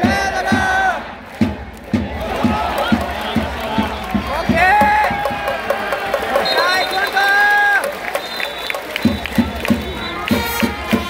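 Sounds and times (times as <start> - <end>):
fans chanting in unison: 0.0 - 4.9
drum beating: 0.0 - 11.0.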